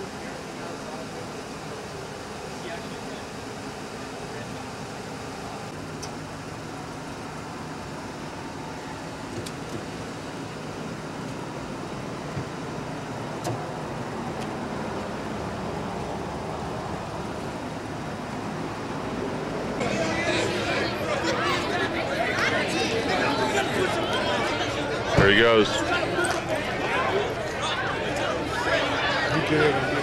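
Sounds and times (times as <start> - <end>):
car engine: 0.0 - 27.6
road traffic: 0.0 - 30.0.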